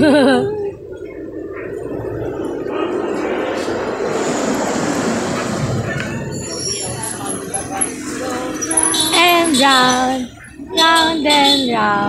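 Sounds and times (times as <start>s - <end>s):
steady rushing noise: 0.0s - 10.8s.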